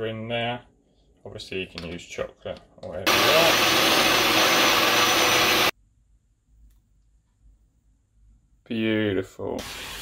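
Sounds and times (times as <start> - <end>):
blender motor running: 3.1 - 5.7.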